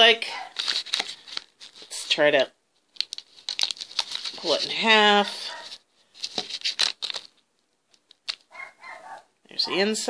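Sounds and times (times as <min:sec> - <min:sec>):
plastic wrapper crinkling: 0:00.4 - 0:02.2, 0:02.8 - 0:08.5.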